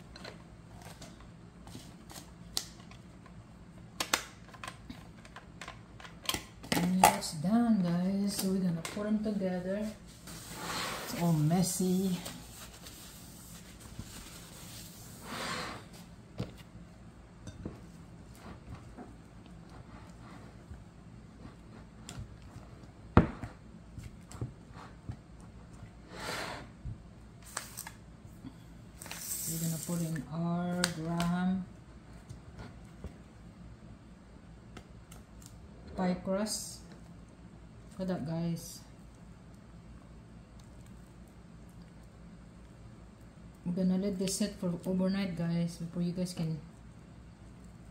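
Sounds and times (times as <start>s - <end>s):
woman's voice: 6.8s - 10.0s, 11.1s - 12.4s, 29.4s - 31.7s, 35.9s - 36.9s, 38.0s - 38.9s, 43.6s - 46.7s.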